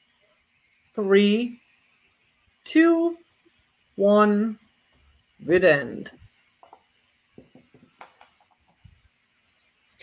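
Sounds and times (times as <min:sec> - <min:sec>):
shakers clicking on table: 0:06.6 - 0:08.8.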